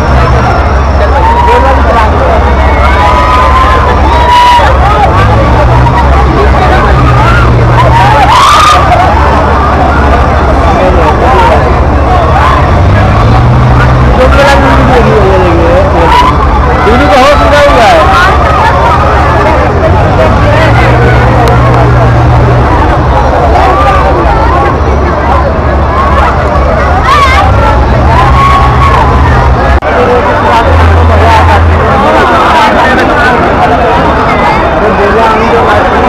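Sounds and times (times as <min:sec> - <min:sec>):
riders shouting: 0:00.0 - 0:15.1
deep hum: 0:00.0 - 0:32.4
crowd babble: 0:00.0 - 0:36.0
fairground ride machinery rumble: 0:00.0 - 0:36.0.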